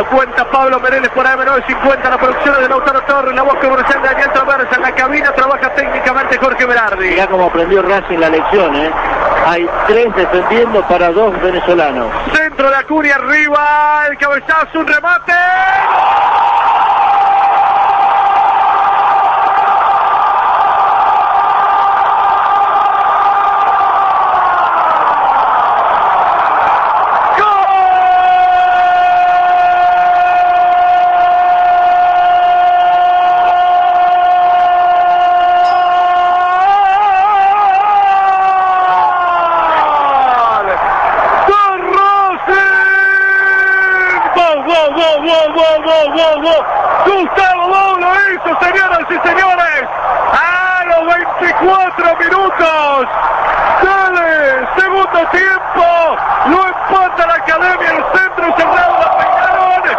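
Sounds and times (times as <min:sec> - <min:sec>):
man talking fast and excited: 0:00.0 - 0:16.3, 0:27.3 - 0:40.8, 0:41.4 - 0:59.9.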